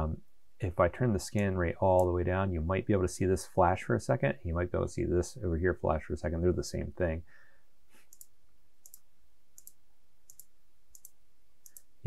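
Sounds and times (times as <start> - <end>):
computer mouse clicking: 8.0 - 11.9.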